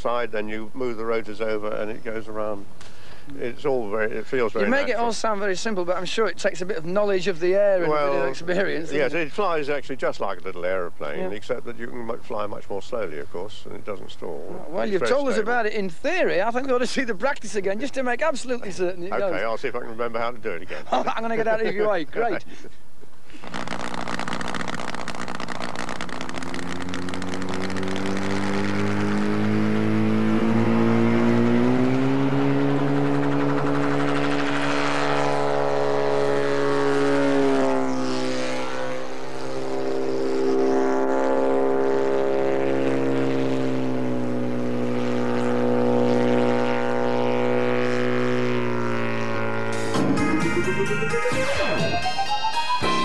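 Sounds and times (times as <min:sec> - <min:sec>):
light aircraft engine and propeller: 0:00.0 - 0:51.6.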